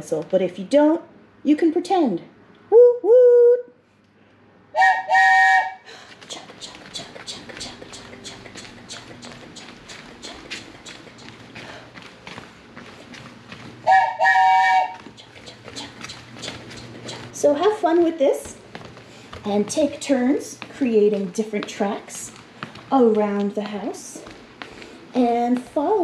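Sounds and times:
toy train whistle: 0:04.8 - 0:05.8, 0:13.9 - 0:15.0
person chanting chugga-chugga: 0:06.2 - 0:11.4, 0:14.9 - 0:17.8.

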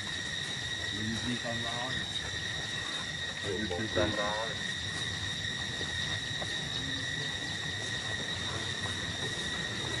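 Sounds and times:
high-pitched insect drone: 0:00.0 - 0:10.0.

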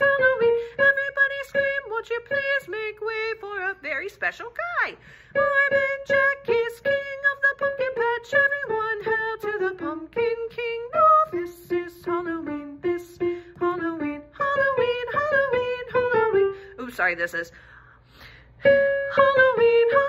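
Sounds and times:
woman singing soprano: 0:05.4 - 0:16.6, 0:18.6 - 0:20.0.

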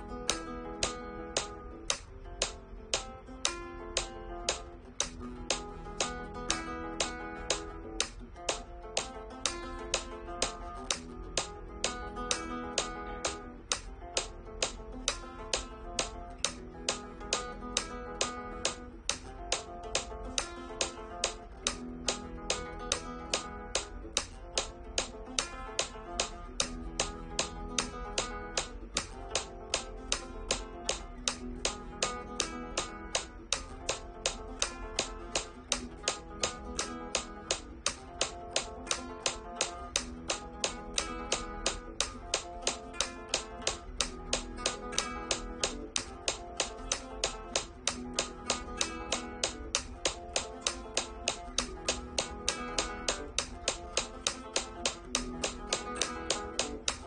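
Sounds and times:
flamenco guitar arpeggios: 0:00.0 - 0:57.0
metronome clicking: 0:00.0 - 0:57.0.

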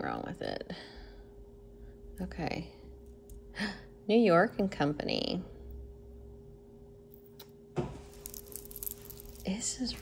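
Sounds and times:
steady low hum: 0:00.0 - 0:10.0
chain necklace clicking and rustling: 0:08.0 - 0:10.0.

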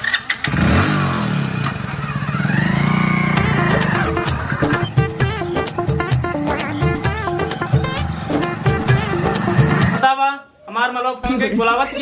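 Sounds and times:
motorcycle engine revving: 0:00.0 - 0:10.0.

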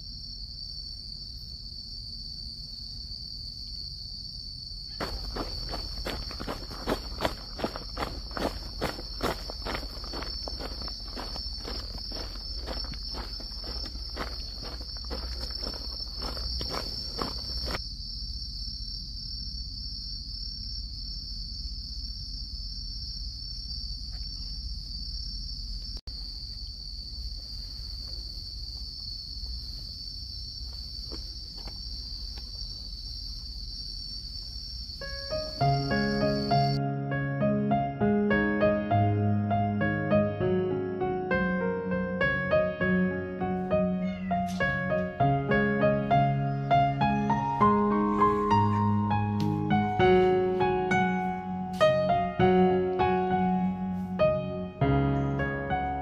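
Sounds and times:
high-pitched insect chorus: 0:00.0 - 0:36.8, 0:43.8 - 0:55.8
footsteps: 0:05.0 - 0:17.8.

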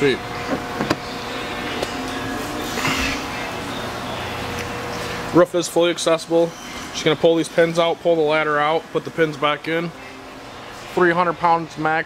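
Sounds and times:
electric fuel pump humming: 0:00.0 - 0:12.0.

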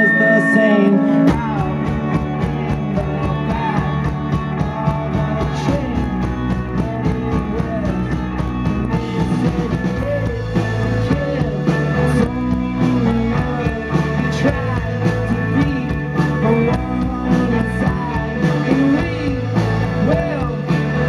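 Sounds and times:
bass guitar: 0:00.0 - 0:21.0
drum kit beat: 0:00.0 - 0:21.0
electric guitars: 0:00.0 - 0:21.0.

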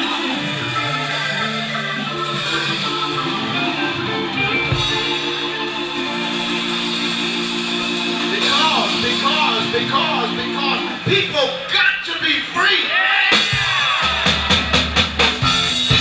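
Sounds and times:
electric guitar: 0:00.0 - 0:11.1
organ playing held chords: 0:00.0 - 0:11.7, 0:15.4 - 0:16.0.

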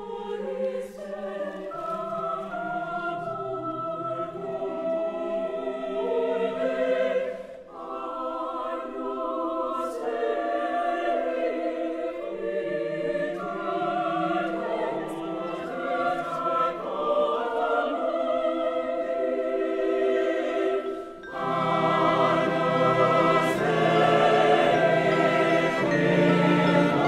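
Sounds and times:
cello: 0:00.0 - 0:27.0
choir singing sustained chords: 0:00.0 - 0:27.0.

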